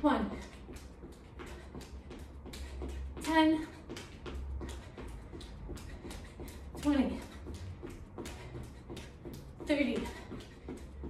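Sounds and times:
woman counting: 0:00.0 - 0:00.8, 0:03.1 - 0:04.1, 0:06.7 - 0:07.6, 0:09.6 - 0:10.4.

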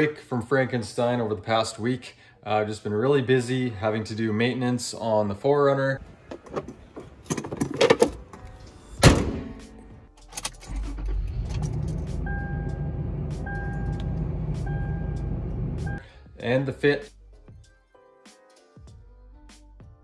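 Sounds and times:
engine running: 0:10.9 - 0:16.0
dashboard warning chime: 0:12.2 - 0:16.0.

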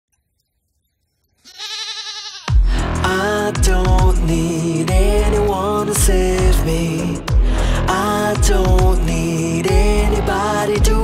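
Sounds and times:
high quavering cry: 0:01.4 - 0:02.5.

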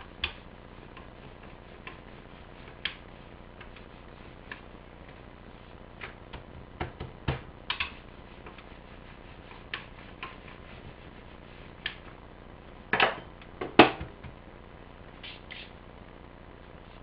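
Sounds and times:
dough tapping on cutting board: 0:06.0 - 0:08.0.

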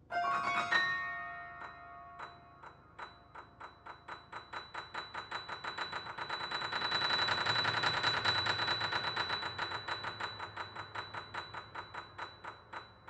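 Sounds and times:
high ringing tone: 0:00.0 - 0:03.9
piano staccato notes: 0:00.1 - 0:02.7.

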